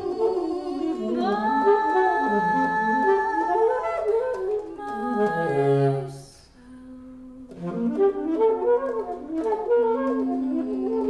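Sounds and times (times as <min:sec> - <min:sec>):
saxophone notes: 0:00.0 - 0:11.0
wavering vocal notes: 0:00.0 - 0:11.0.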